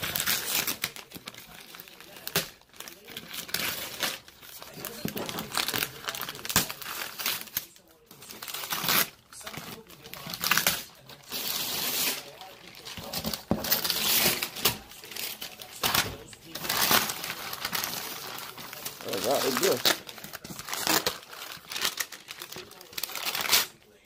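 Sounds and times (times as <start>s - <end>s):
paper tearing and crumpling: 0.0s - 24.0s.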